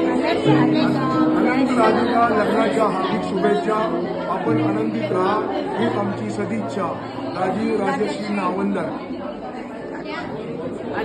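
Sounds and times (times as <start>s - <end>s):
chatter of voices in a hall: 0.0s - 11.0s.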